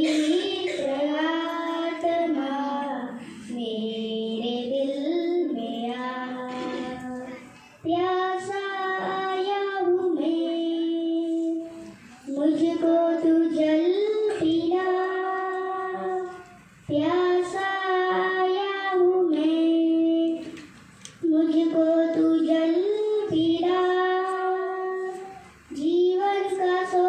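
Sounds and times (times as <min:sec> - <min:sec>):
girl singing devotional song: 0:00.0 - 0:27.0.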